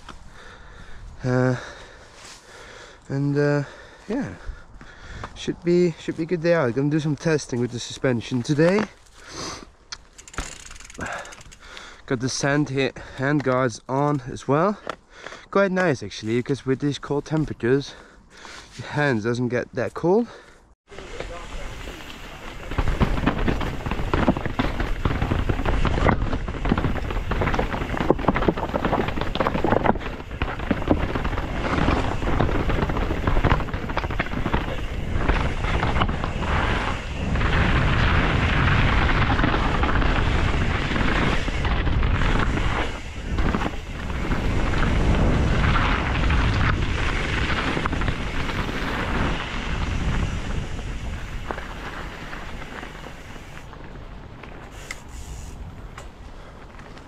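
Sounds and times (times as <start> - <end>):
bike clattering over rocks: 10.0 - 11.7, 21.2 - 53.6
tyres rolling over dirt: 20.9 - 57.0
wind on microphone: 23.2 - 53.6.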